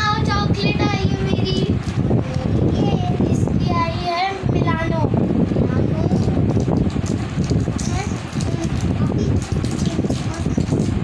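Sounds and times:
low background rumble: 0.0 - 11.0
wrapper crinkling: 6.2 - 11.0.

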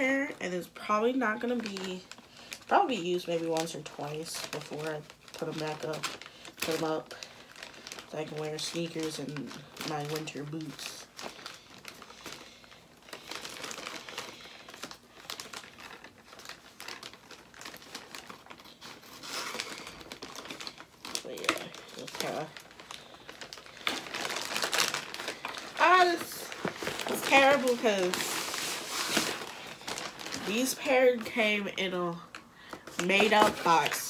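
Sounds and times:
plastic bag crinkling and tearing: 0.0 - 34.0.

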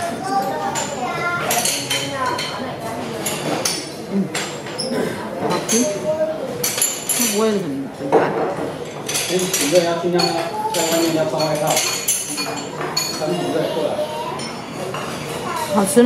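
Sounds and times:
utensils clinking porcelain bowl: 0.2 - 4.9, 8.4 - 16.0.

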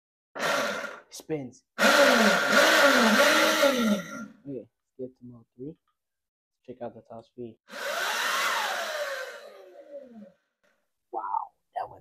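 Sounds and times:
electric motor whining: 1.8 - 4.3, 7.7 - 10.3.

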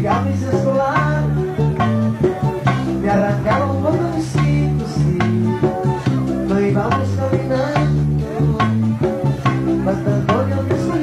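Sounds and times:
plucked guitar lines: 0.0 - 11.0
steady percussion beat: 0.0 - 11.0
sustained bass notes: 0.0 - 11.0.

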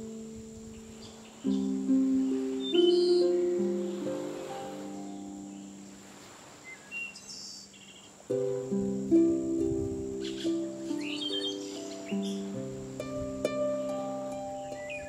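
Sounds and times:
soft harp music: 0.0 - 15.0
birds chirping: 0.7 - 8.9, 10.1 - 15.0.

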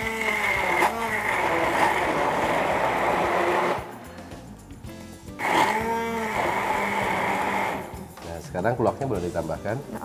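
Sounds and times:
immersion blender whirring: 0.0 - 3.9, 5.4 - 8.1.

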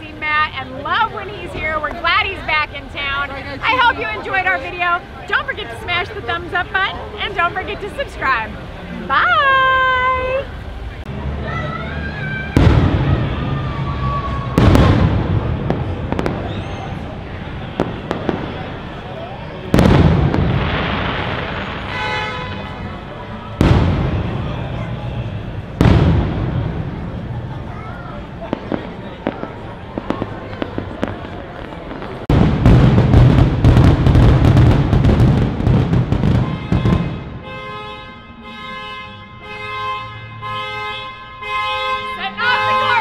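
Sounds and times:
fireworks bangs and crackles: 0.0 - 10.4, 12.0 - 37.7
fireworks booming: 12.4 - 37.8.

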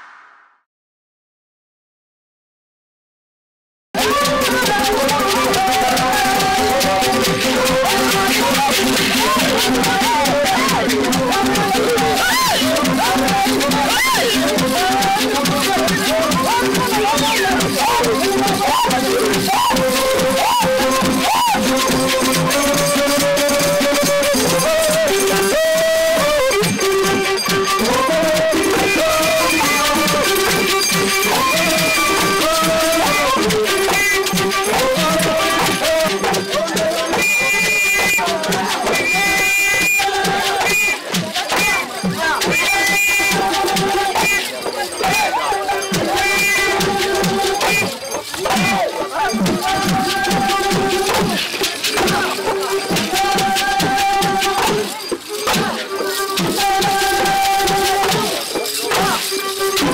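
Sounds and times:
rattling percussion: 4.0 - 59.9
voices singing held notes: 4.0 - 59.9.

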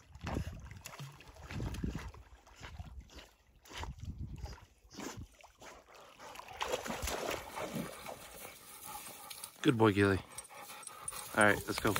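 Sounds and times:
dog splashing in water: 5.2 - 8.8
dog breathing: 8.2 - 11.9.

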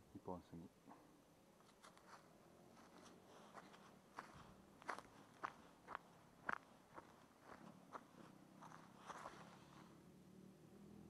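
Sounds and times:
footsteps on dry grass: 1.6 - 9.8.

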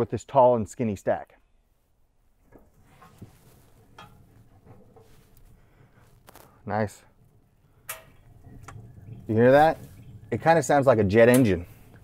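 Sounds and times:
low rumble of smoker firebox: 1.9 - 12.0.

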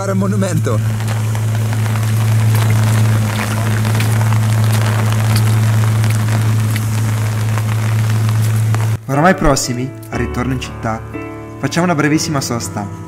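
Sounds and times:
heavy rain falling: 0.0 - 9.8
steady low hum: 0.0 - 10.0
rain drop clicks: 0.0 - 10.5.

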